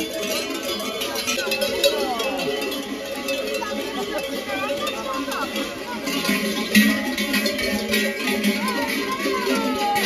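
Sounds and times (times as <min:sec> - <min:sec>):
cowbells clanking: 0:00.0 - 0:10.0.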